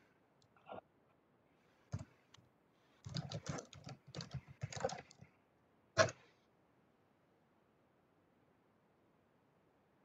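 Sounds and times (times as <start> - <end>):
computer keyboard typing: 3.0 - 5.2.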